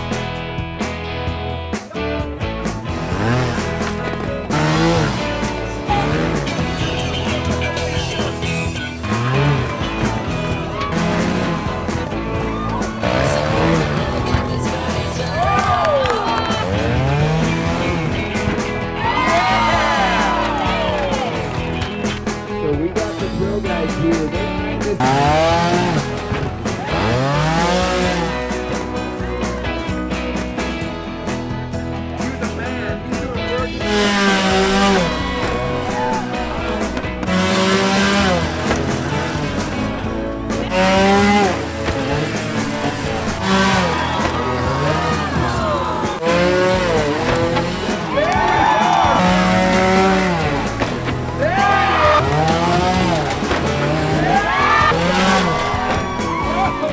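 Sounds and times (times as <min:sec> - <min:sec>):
background music: 0:00.0 - 0:56.9
motorcycle engines revving: 0:00.0 - 0:56.9.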